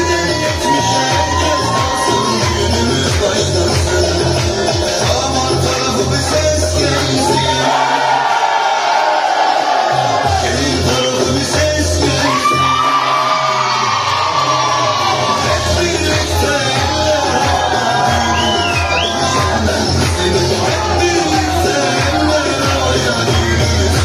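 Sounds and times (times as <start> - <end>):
crowd clapping and shouting: 0.0 - 24.0
dance music with singing: 0.0 - 24.0
short whistle: 18.4 - 19.3.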